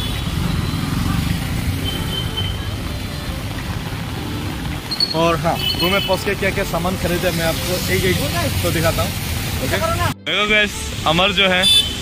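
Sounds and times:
auto-rickshaw engine rumbling past: 0.0s - 9.4s
heavy rain: 0.0s - 12.0s
traffic on wet road: 0.0s - 12.0s.

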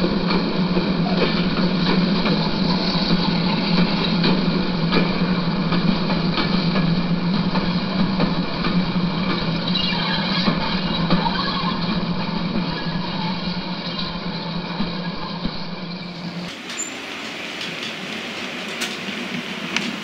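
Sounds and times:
wheels clicking over rail joints: 0.0s - 20.0s.

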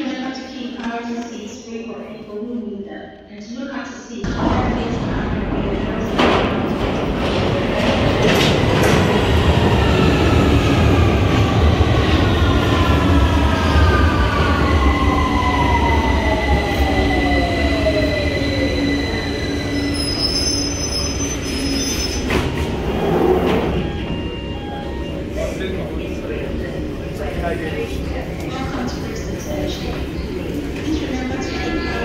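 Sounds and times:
train doors opening: 4.3s - 12.1s, 15.4s - 25.6s
train wheels rumbling and squealing: 4.7s - 27.9s.

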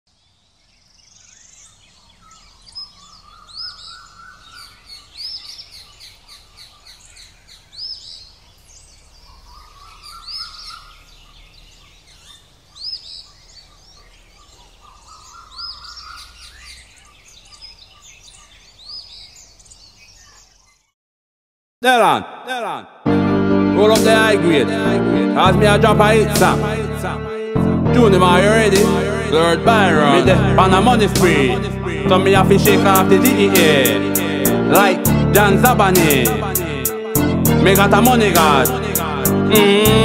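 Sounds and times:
birds chirping and whistling: 0.8s - 20.9s.

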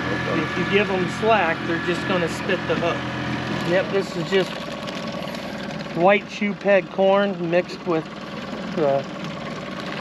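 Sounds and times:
boat motor running: 0.0s - 10.0s
person speaking: 3.6s - 4.5s.

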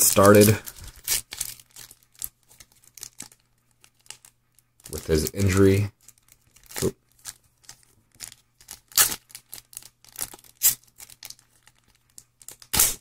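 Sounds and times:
foil wrapper crinkling and tearing: 0.0s - 13.0s.

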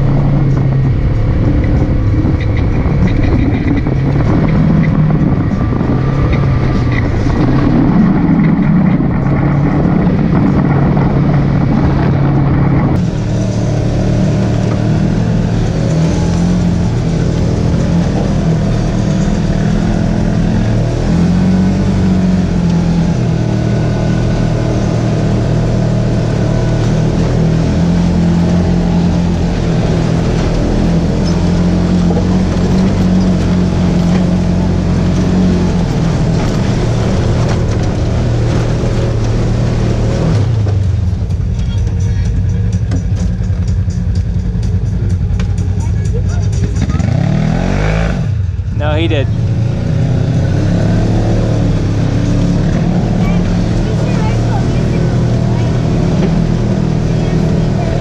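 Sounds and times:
off-road vehicle engine running: 0.0s - 58.0s.

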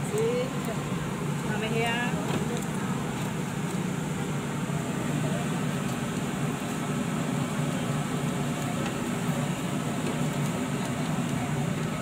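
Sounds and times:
low mechanical drone: 0.0s - 12.0s.

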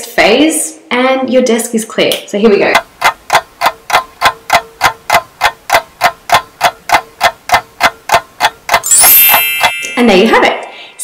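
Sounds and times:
clock-like ticking: 2.7s - 10.8s.

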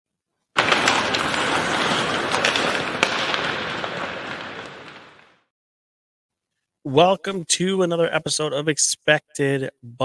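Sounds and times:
crackling noise with pops: 0.6s - 5.5s.

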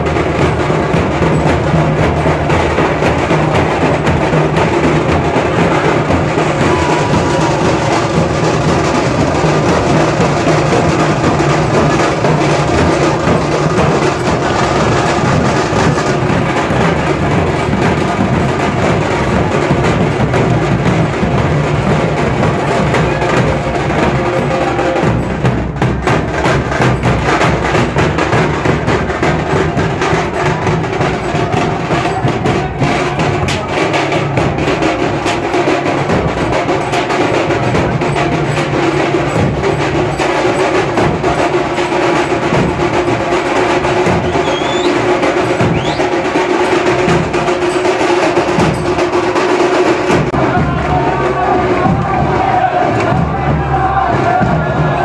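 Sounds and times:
dhol drums beaten with sticks: 0.0s - 55.0s.

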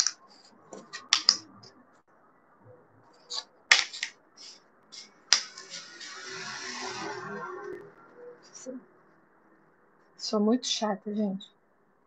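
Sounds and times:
wooden pieces clicking: 0.0s - 1.6s, 3.3s - 5.7s.

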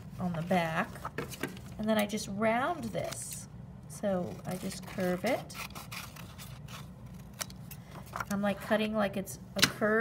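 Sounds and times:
scissors cutting paper: 4.3s - 7.6s.

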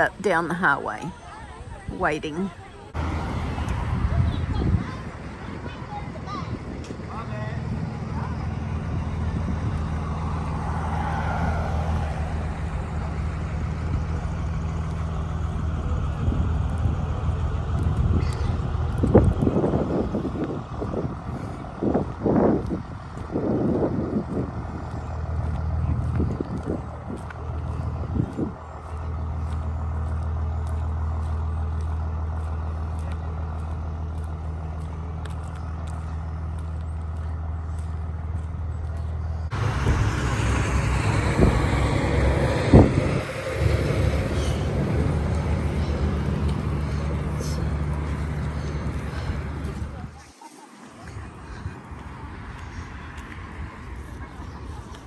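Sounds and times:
vehicle engine idling: 2.6s - 55.0s.

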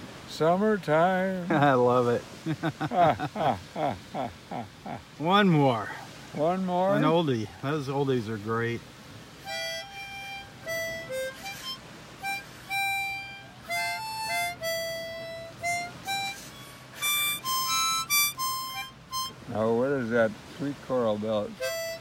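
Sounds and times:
harmonica melody: 9.3s - 20.1s, 21.4s - 22.0s.

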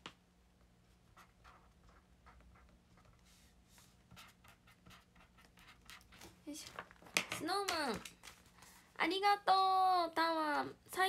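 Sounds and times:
pen scratching on paper: 1.1s - 3.5s, 4.1s - 6.2s.

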